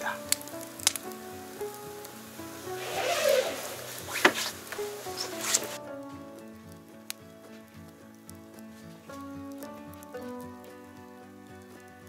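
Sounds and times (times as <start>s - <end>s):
rustle: 0.0s - 5.8s
soft melody of held notes: 0.0s - 12.0s
wood fire crackling: 0.0s - 12.0s.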